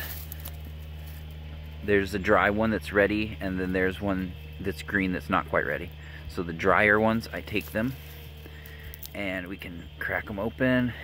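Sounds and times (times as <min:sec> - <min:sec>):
low background hum: 0:00.0 - 0:11.0
man speaking: 0:01.8 - 0:08.0, 0:09.1 - 0:11.0.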